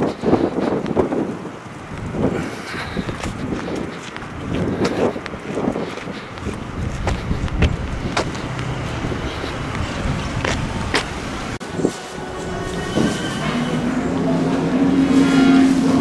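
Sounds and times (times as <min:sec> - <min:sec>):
footsteps on pavement: 0:00.0 - 0:12.0
outdoor background noise: 0:00.0 - 0:16.0.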